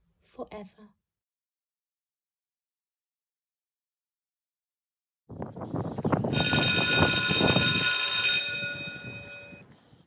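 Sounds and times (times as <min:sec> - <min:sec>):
bright high ringing tones: 0:06.4 - 0:09.6.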